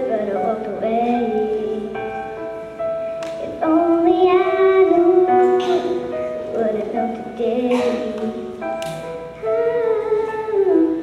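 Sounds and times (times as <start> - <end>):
girl singing into microphone: 0.0 - 2.4, 3.2 - 11.0
backing track music: 0.0 - 11.0.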